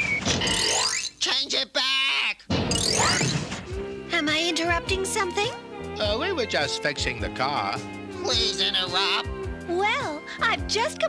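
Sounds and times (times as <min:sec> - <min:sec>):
rising whistle-like sound effects: 0:00.0 - 0:00.4
cartoon music: 0:02.7 - 0:03.4, 0:08.2 - 0:10.9.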